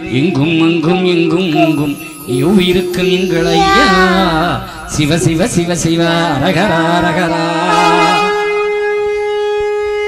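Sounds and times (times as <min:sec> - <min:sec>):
electronic keyboard long note: 0:01.2 - 0:09.1.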